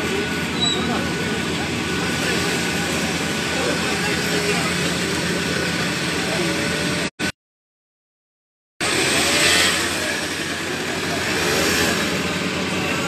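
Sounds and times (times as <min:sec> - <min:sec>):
excavator diesel engine running: 0:00.0 - 0:07.1, 0:08.8 - 0:13.0
street noise: 0:00.0 - 0:07.4, 0:08.8 - 0:13.0.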